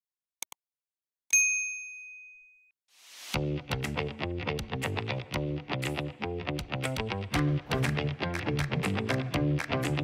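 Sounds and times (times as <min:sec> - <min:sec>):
bright bell ding: 0:01.3 - 0:02.7.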